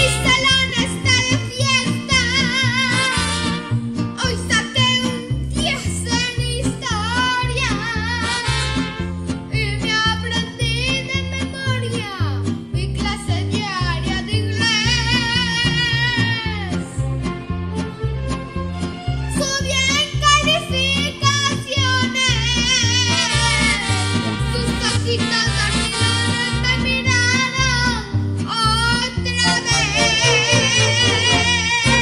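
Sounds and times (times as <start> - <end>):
child singing into microphone: 0.0 - 3.1
boy singing into a microphone: 0.0 - 3.2, 4.2 - 8.5, 9.6 - 16.9, 19.4 - 23.8, 24.5 - 32.0
backing track with bass line: 0.0 - 32.0.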